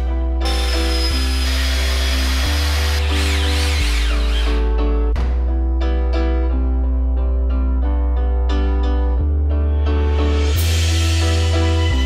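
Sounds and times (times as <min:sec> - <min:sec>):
background music: 0:00.0 - 0:12.0
cordless drill whining: 0:00.4 - 0:04.7.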